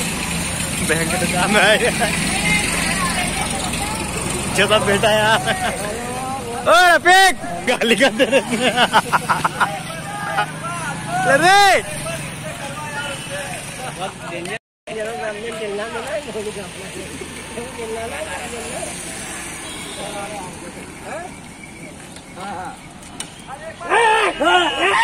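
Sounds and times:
men shouting and chattering: 0.0s - 25.0s
passing motorcycles and traffic: 0.0s - 25.0s
loud shout: 9.5s - 13.2s, 23.6s - 25.0s.

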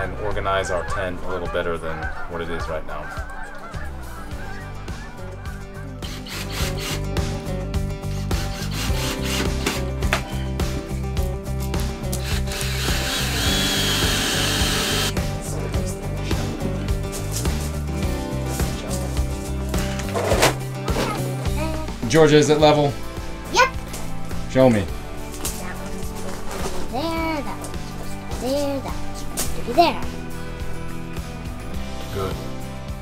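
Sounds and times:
background music: 0.0s - 33.0s
cordless drill driving screws: 6.0s - 7.0s, 8.5s - 9.8s, 12.2s - 15.1s.

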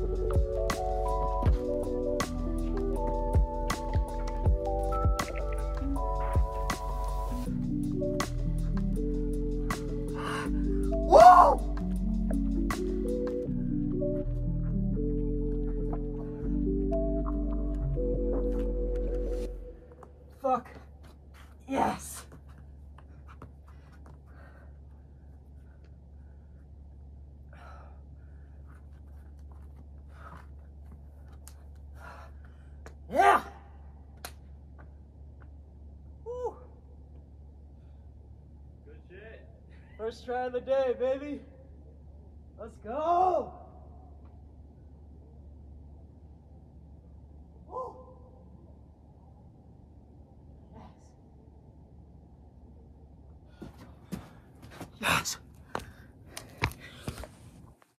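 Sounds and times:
steady low hum: 0.0s - 57.8s
footsteps on gritty dirt: 14.3s - 24.3s.

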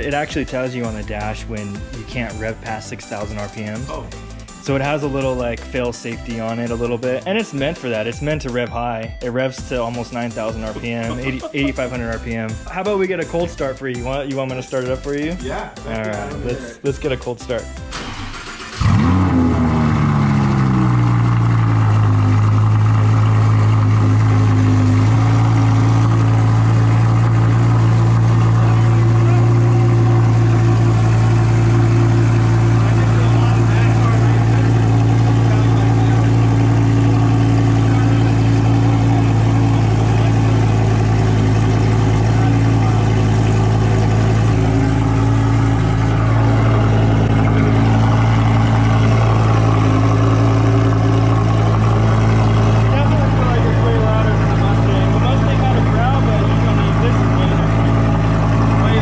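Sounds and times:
car engine cold start and idle: 0.0s - 8.8s, 9.6s - 59.0s.

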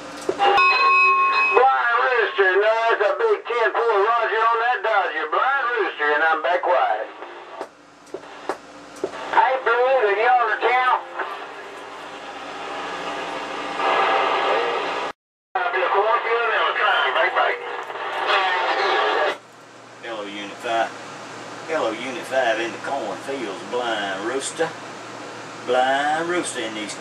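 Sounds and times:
garbled radio voices: 1.6s - 11.8s, 15.6s - 19.4s
radio static hiss: 1.9s - 19.4s
sharp radio clicks: 7.2s - 9.4s.

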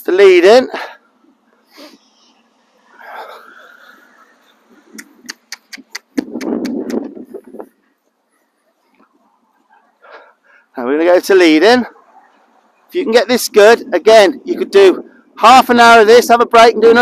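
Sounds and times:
sharp tongue clicks: 4.9s - 7.2s.

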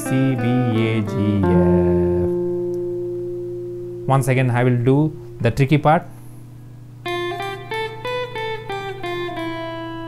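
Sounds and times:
electric guitar melody: 0.0s - 10.0s
steady low hum: 0.0s - 10.0s.

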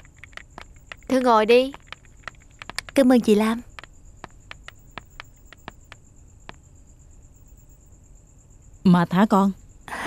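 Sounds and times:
footsteps on tiled floor: 0.0s - 3.0s, 4.2s - 5.9s
cricket chirring: 0.0s - 10.0s.

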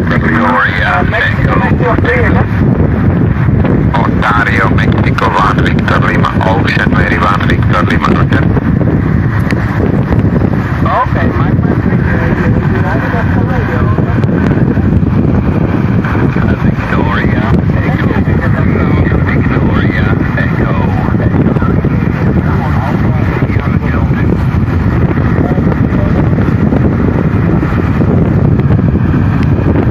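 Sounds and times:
radio voice from loudspeaker: 0.0s - 2.5s, 3.9s - 8.5s, 10.8s - 14.2s, 16.3s - 24.4s
radio hiss and static: 0.0s - 2.6s, 3.8s - 8.7s, 10.6s - 27.7s
wind buffeting microphone: 0.0s - 29.9s.

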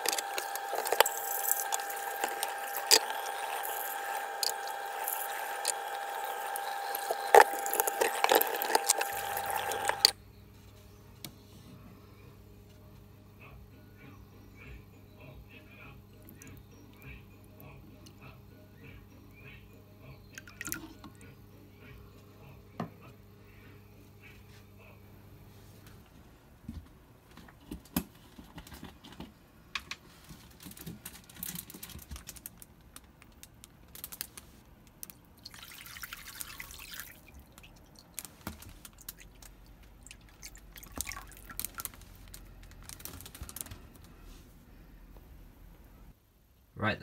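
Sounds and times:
water pouring into a bowl: 0.0s - 10.1s, 20.3s - 21.1s, 35.4s - 38.3s, 39.0s - 42.0s
water dripping and splashing: 35.4s - 42.1s.

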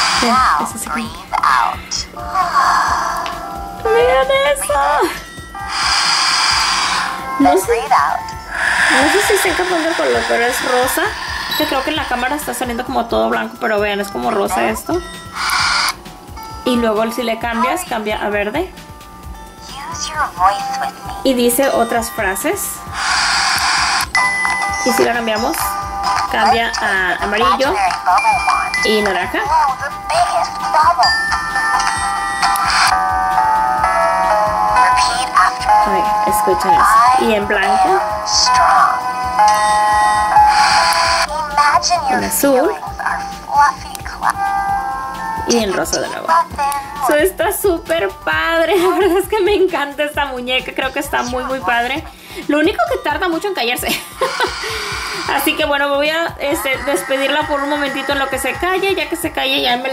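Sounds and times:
toy speaker electronic tune: 0.0s - 3.2s, 5.4s - 12.8s, 15.0s - 16.0s, 21.8s - 41.3s, 54.2s - 55.6s, 56.7s - 58.8s.

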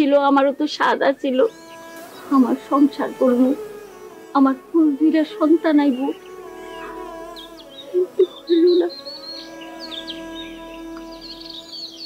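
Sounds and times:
bird chirping: 0.0s - 12.0s
quiet background score: 0.0s - 12.0s.

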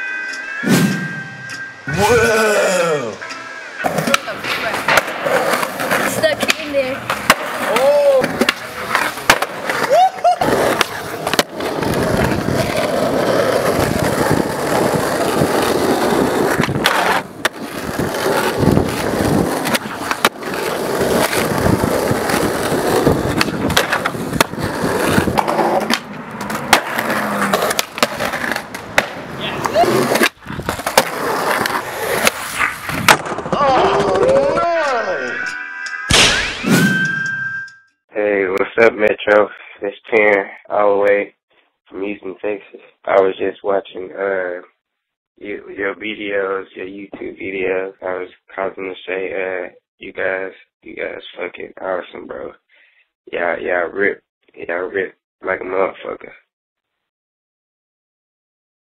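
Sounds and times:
skateboard wheels rolling on concrete: 3.8s - 35.0s.

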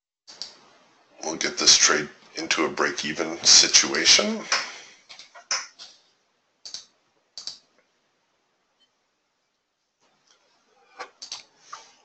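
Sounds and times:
computer keys and mouse clicking: 6.6s - 7.6s, 11.0s - 11.5s.

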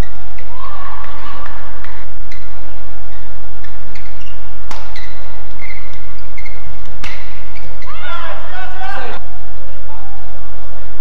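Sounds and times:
racket striking shuttlecock: 3.9s - 5.3s, 5.9s - 7.9s
shoe squeaks on court: 3.9s - 7.9s
person shouting: 7.9s - 9.2s.

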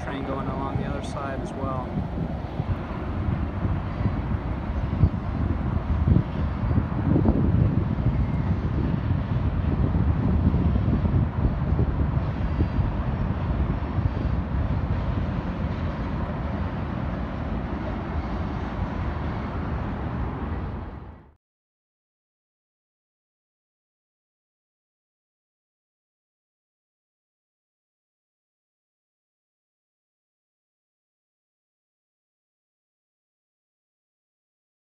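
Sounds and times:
distant freight train rumble: 0.0s - 21.4s
wind buffeting microphone: 0.0s - 21.4s.

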